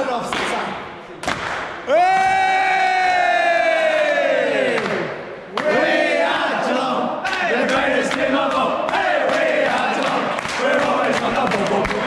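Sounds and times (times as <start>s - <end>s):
group of men shouting: 1.9s - 5.0s.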